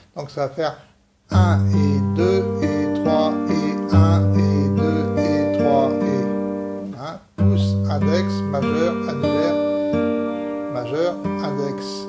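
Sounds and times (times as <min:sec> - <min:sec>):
fingerpicked acoustic guitar: 0:01.3 - 0:12.0.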